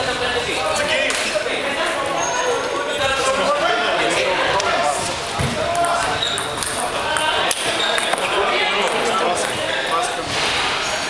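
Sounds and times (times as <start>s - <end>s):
indistinct voices chatting: 0.0s - 11.0s
table tennis ball bouncing: 5.4s - 9.6s.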